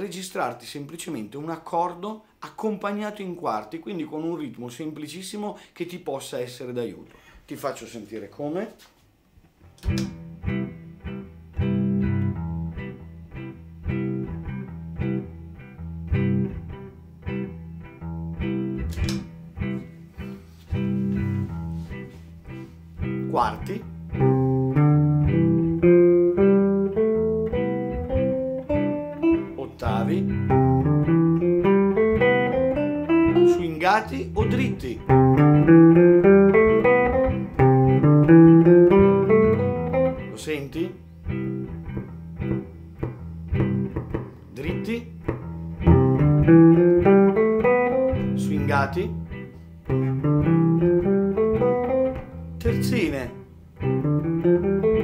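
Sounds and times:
jazz guitar scale runs: 0:09.6 - 0:40.7, 0:41.3 - 0:55.0.

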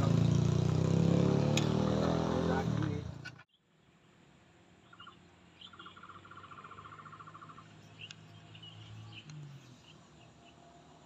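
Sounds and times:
motor scooter engine drone: 0:00.0 - 0:03.4.

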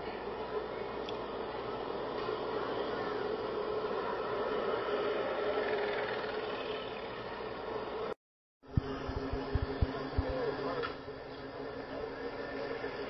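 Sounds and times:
outdoor background noise: 0:00.0 - 0:13.0
engine idling hum: 0:06.0 - 0:13.0.

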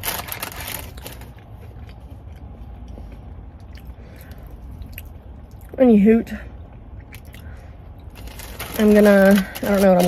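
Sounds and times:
faint chewing: 0:00.0 - 0:05.8
woman speaking: 0:05.8 - 0:06.5, 0:08.7 - 0:10.0.

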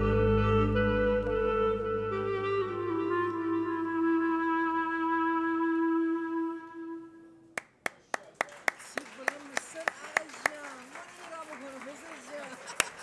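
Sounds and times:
low synth bass: 0:00.0 - 0:04.2
clarinet holding a note: 0:00.0 - 0:07.4
hand claps: 0:07.6 - 0:13.0.

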